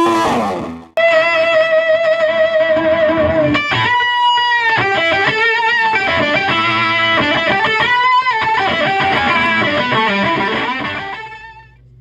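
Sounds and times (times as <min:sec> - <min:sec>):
fuzzed electric guitar: 0:00.0 - 0:12.0.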